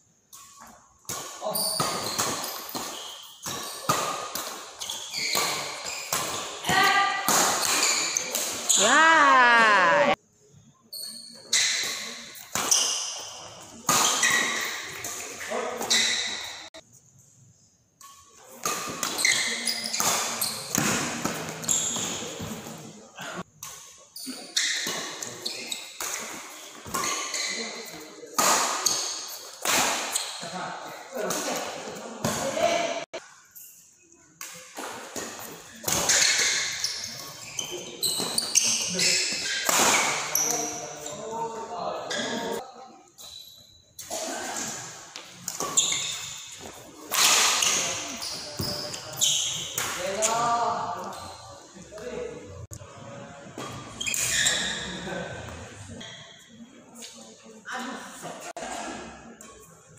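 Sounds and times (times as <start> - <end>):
long wavering shout: 8.8 - 10.2.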